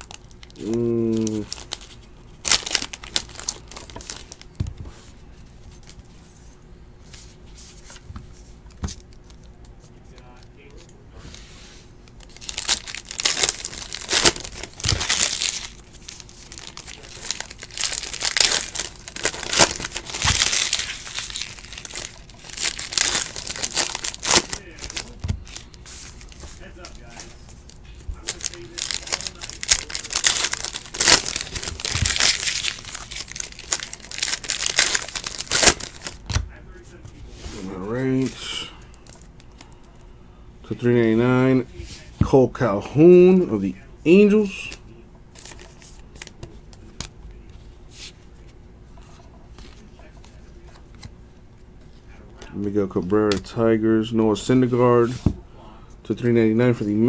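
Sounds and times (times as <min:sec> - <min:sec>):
foil wrappers tearing and crinkling: 0:00.0 - 0:04.5, 0:12.2 - 0:36.4.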